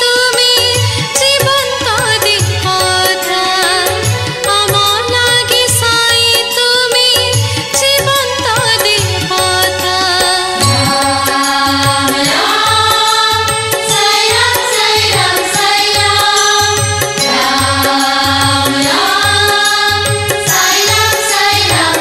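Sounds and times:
chanted devotional vocals: 0.0s - 22.0s
steady drum rhythm: 7.4s - 22.0s.

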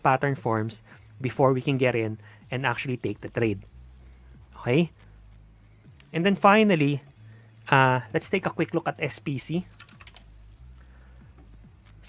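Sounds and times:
low steady hum: 0.0s - 12.0s
computer keyboard clicks: 9.7s - 10.3s.

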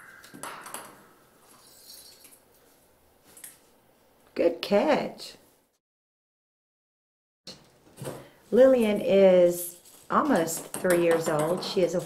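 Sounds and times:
toy balls tapping on wood: 10.4s - 12.0s.

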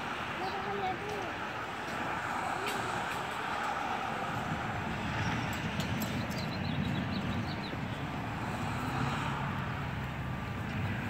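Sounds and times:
freeway traffic passing: 0.0s - 11.0s.

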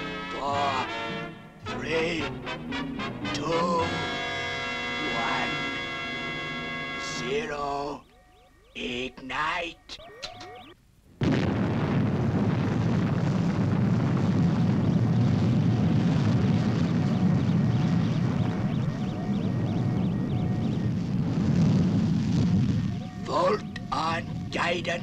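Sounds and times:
rocket engine roar: 1.8s - 7.4s, 11.3s - 25.0s.

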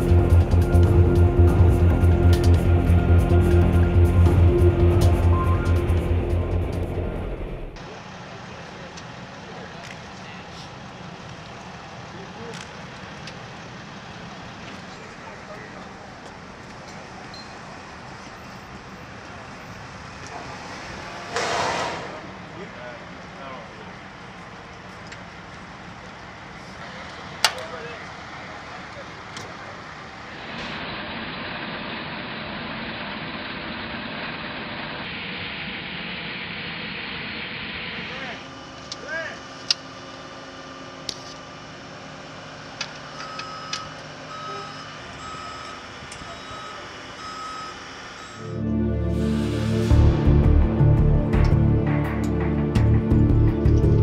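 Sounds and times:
machinery engine drone: 0.0s - 54.0s.

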